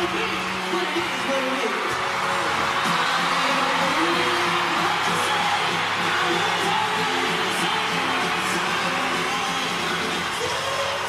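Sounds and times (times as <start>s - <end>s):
live pop concert music: 0.0s - 11.0s.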